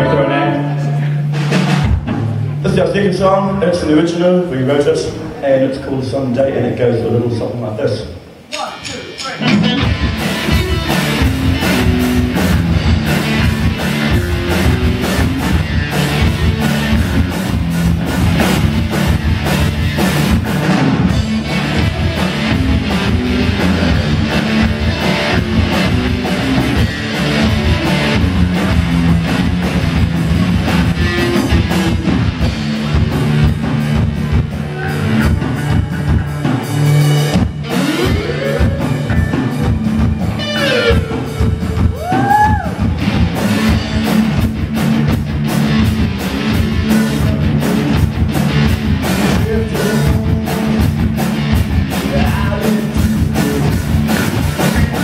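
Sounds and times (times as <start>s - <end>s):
sliding guitar notes: 0.0s - 1.8s, 9.4s - 42.0s
drumming: 0.0s - 5.4s, 8.4s - 55.0s
live rock band playing: 0.0s - 6.4s, 8.1s - 55.0s.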